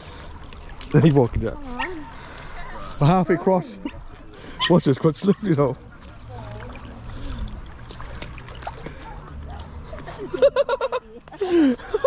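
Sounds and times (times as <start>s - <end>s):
river water splashing: 0.0s - 12.0s.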